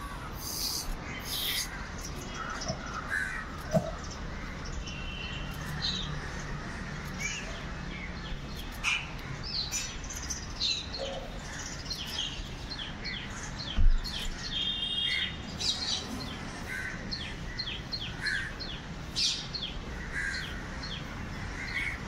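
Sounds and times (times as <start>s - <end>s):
birds chirping: 0.0s - 22.0s.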